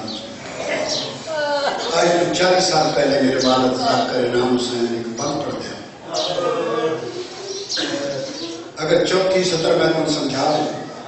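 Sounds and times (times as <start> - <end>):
man speaking into a microphone: 1.9 - 6.0, 8.8 - 11.0.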